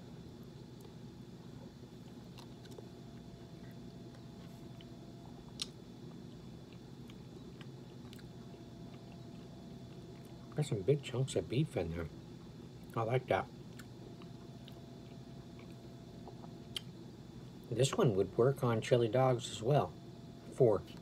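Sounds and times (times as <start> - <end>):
steady low hum: 0.0 - 21.0
person chewing food: 0.5 - 10.6, 13.7 - 17.0.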